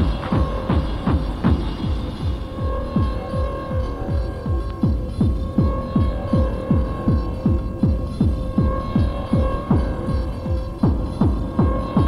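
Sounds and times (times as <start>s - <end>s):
droning hum: 0.0s - 12.0s
electronic music: 0.0s - 12.0s
pitch-dropping kick drum: 0.0s - 12.0s.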